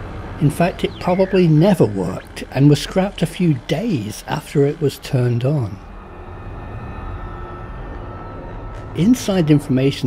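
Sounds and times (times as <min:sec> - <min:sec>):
faint steady tones: 0:00.0 - 0:10.0
low rumbling drone: 0:00.0 - 0:10.0.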